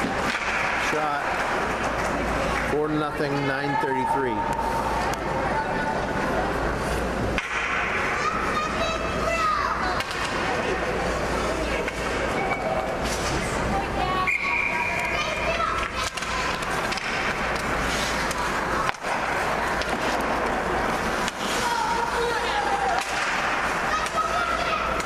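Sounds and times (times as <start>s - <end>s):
skates scraping on ice: 0.0s - 3.5s, 4.4s - 25.0s
voices calling out in arena: 2.7s - 6.7s, 8.0s - 17.1s, 17.7s - 25.0s.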